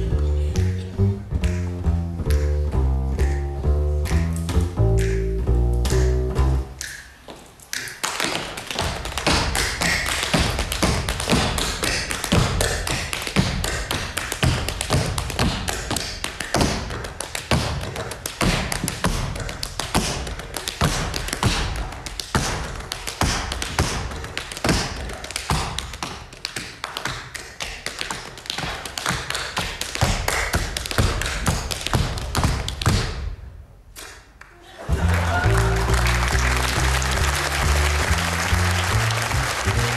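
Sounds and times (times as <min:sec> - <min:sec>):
heavy stomps: 0:00.6 - 0:07.5, 0:08.2 - 0:25.9
tap dancing shoe taps: 0:08.3 - 0:33.2.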